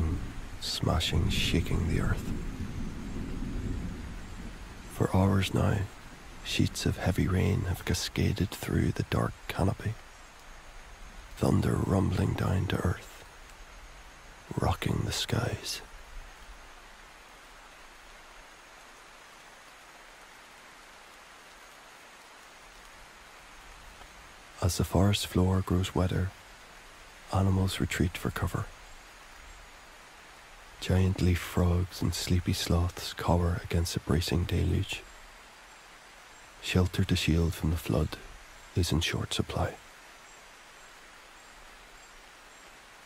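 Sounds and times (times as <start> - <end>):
thunder rumbling: 0.0 - 7.9
heavy rain pouring: 0.0 - 43.0.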